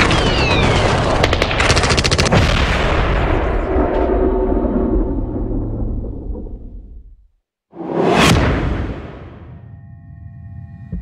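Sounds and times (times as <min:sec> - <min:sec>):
automatic gunfire: 0:00.0 - 0:02.4
whoosh: 0:07.7 - 0:09.9.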